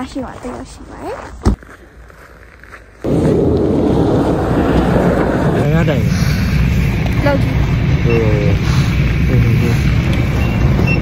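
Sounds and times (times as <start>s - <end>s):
bus diesel engine rumbling: 3.1s - 11.0s.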